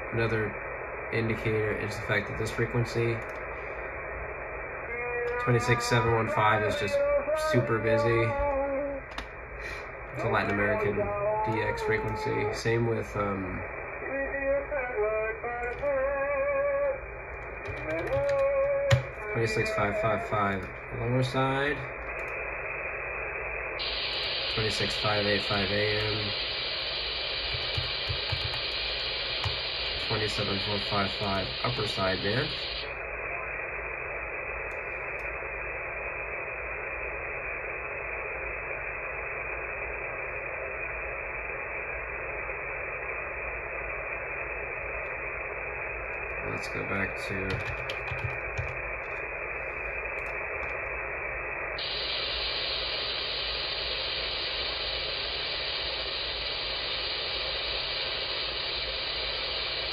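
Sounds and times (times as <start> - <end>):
muffled radio voice singing: 0.0 - 37.1, 38.4 - 50.9.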